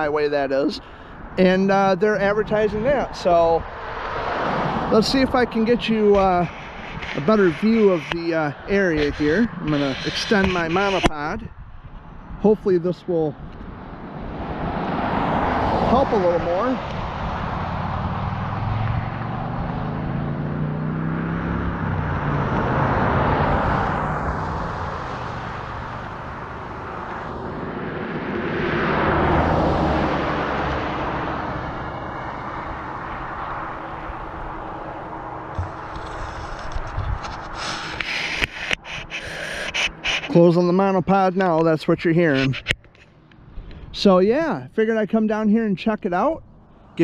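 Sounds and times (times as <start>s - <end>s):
highway traffic passing: 0.0s - 47.0s.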